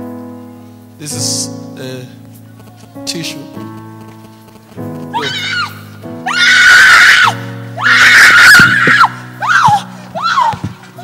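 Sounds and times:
sustained keyboard chords: 0.0s - 6.3s
woman screaming: 5.2s - 10.7s.

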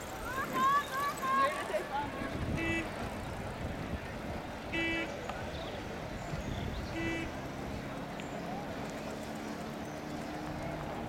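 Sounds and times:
outdoor hubbub: 0.0s - 11.0s.

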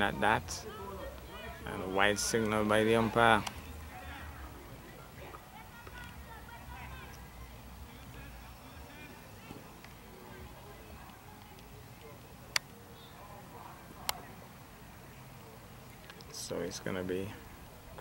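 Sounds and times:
distant voices talking: 0.0s - 18.0s.

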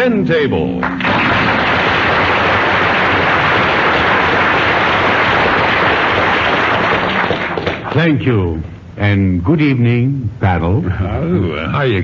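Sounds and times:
audience applauding: 0.8s - 8.1s.

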